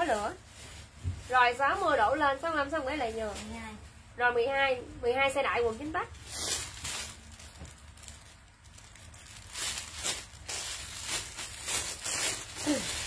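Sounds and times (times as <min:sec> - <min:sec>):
plastic bag crinkling: 0:05.6 - 0:13.0.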